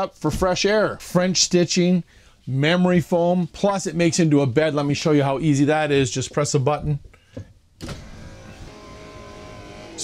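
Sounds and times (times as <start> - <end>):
electric motor of power sofa: 7.8 - 10.0.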